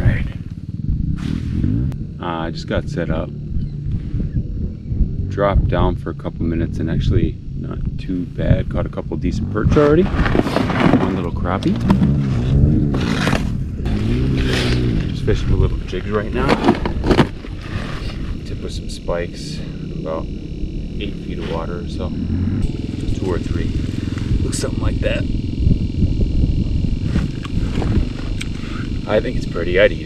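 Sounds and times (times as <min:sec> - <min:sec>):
engine running: 0:00.0 - 0:30.0
wind buffeting microphone: 0:00.0 - 0:30.0.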